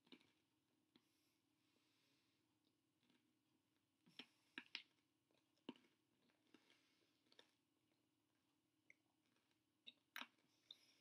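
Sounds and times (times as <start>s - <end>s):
chewing hard bread crunches: 4.1s - 10.9s.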